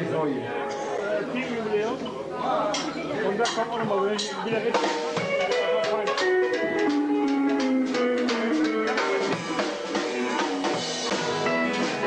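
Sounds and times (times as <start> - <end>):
live country band: 2.6 - 12.0.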